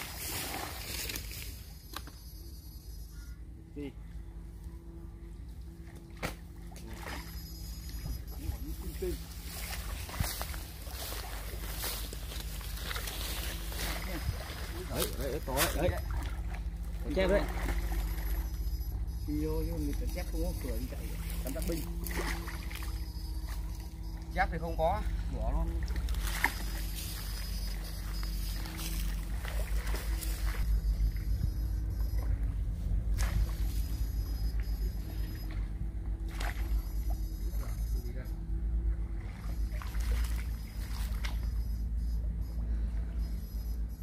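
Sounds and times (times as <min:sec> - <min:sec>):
faint steady hum: 0:00.0 - 0:44.0
low fluctuating rumble: 0:00.0 - 0:44.0.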